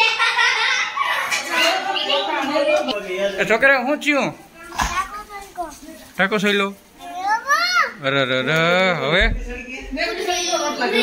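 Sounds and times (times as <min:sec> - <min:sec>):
young children calling out: 0:07.0 - 0:08.0.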